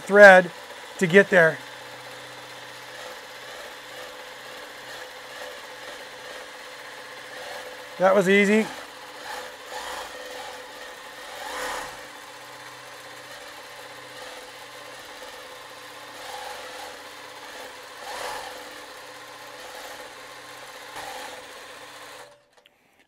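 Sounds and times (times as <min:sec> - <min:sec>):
quilting machine humming: 0:00.0 - 0:22.7.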